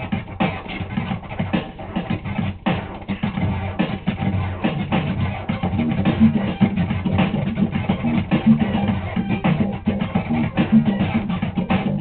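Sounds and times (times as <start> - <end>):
backing track with a beat: 0.0 - 12.0
vinyl record scratching: 0.0 - 12.0.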